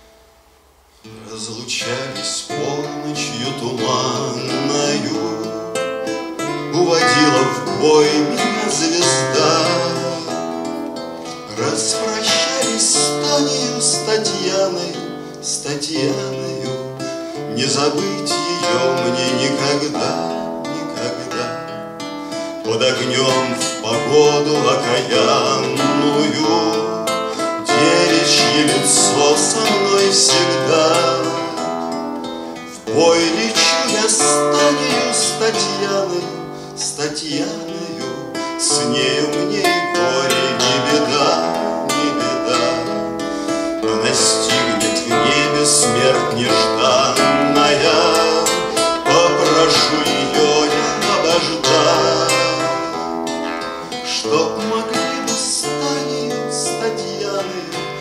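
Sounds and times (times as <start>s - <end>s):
acoustic guitar strumming: 0.0s - 58.0s
man singing: 1.0s - 58.0s.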